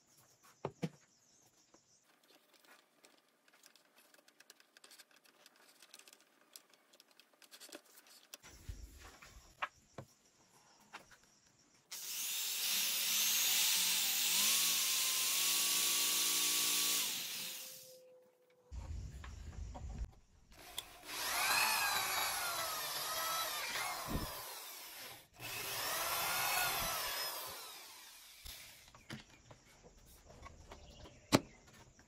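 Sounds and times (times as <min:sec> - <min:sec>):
power tool motor whining: 0:11.9 - 0:18.0, 0:20.5 - 0:28.9.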